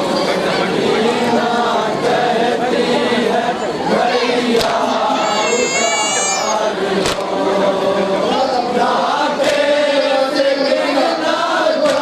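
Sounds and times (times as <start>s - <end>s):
men chanting into a microphone: 0.0s - 12.0s.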